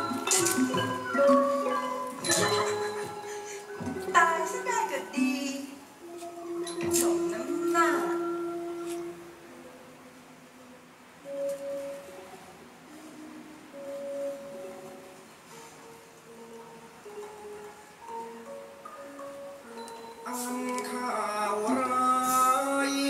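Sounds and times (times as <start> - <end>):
mallet percussion melody: 0.0 - 10.1, 11.2 - 23.0.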